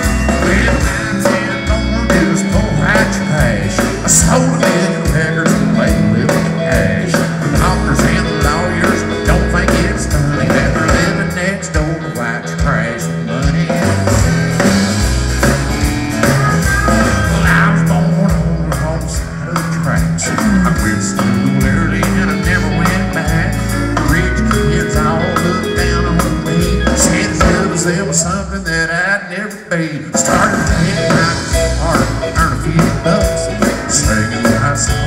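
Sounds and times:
acoustic guitar: 0.0s - 35.0s
bass: 0.0s - 35.0s
drums: 0.0s - 35.0s
electric guitar: 0.0s - 35.0s.

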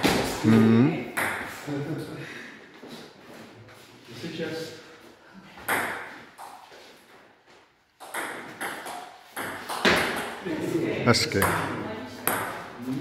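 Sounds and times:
table tennis ball hits: 1.2s - 1.6s, 5.6s - 6.6s, 8.0s - 10.4s, 11.4s - 12.7s.

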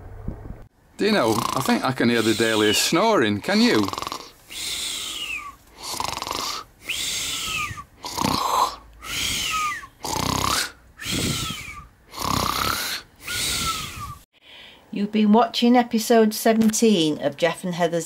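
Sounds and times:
cartoon snoring with whistle: 1.2s - 3.0s, 3.6s - 14.2s.

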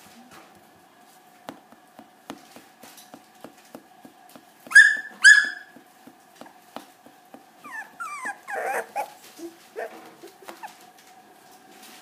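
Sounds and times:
puppy whimpering: 4.7s - 5.8s, 7.6s - 10.9s
puppy yelping: 4.7s - 5.8s, 7.6s - 10.8s.

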